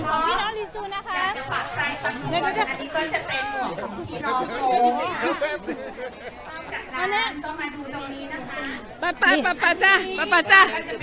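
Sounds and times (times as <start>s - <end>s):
crowd talking: 0.0s - 11.0s
woman talking: 6.7s - 11.0s.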